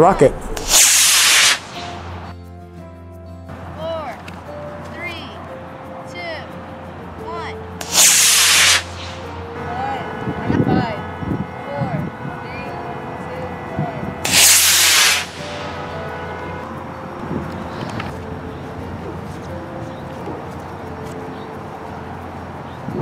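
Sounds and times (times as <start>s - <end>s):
model rocket motor hissing: 0.6s - 2.1s, 7.8s - 9.2s, 14.2s - 15.6s.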